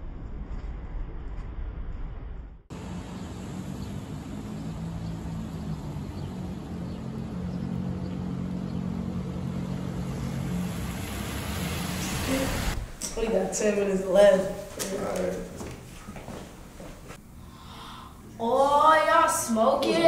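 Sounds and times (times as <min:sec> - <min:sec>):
car engines humming: 0:02.7 - 0:13.7
tyres hissing on wet road: 0:09.8 - 0:12.9.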